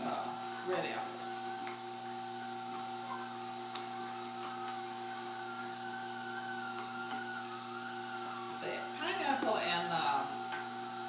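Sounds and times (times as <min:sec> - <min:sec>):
juicer motor hum: 0:00.0 - 0:11.0.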